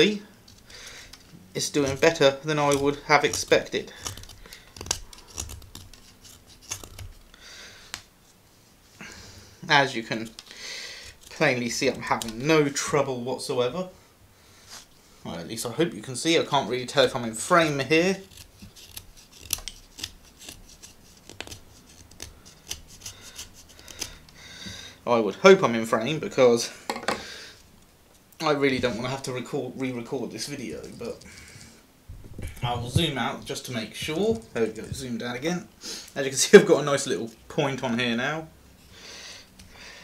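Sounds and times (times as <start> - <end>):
knife scraping wood: 0.5 - 7.4, 10.1 - 12.5, 17.5 - 24.7.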